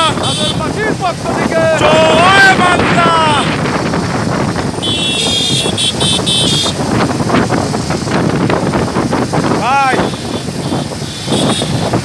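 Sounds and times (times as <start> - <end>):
motorcycle engines: 0.0 - 12.0
wind buffeting microphone: 0.0 - 12.0
horn short toots: 4.8 - 6.8, 10.0 - 11.9.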